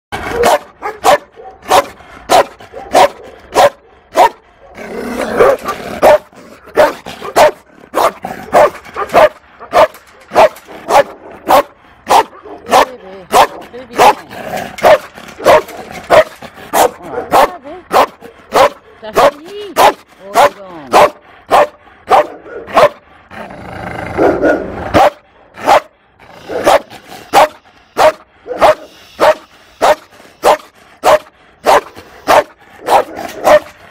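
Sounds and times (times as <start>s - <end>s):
dog barking sharply: 0.2s - 4.4s, 5.4s - 14.2s, 14.8s - 23.0s, 24.2s - 25.9s, 26.5s - 33.7s.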